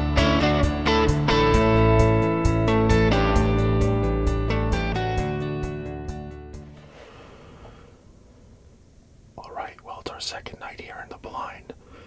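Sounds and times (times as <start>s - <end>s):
low background hiss: 6.8s - 12.0s
man whispering: 9.3s - 12.0s.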